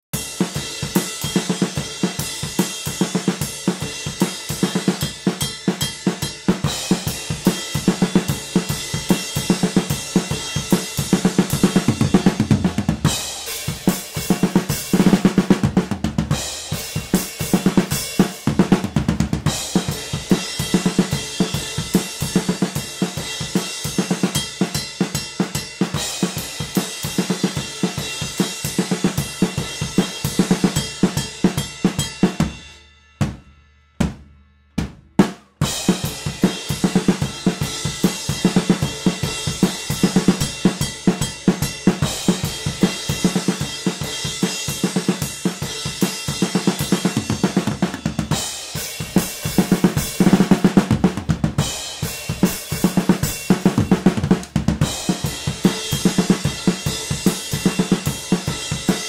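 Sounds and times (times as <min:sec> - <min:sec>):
drum kit groove: 0:00.0 - 0:59.0.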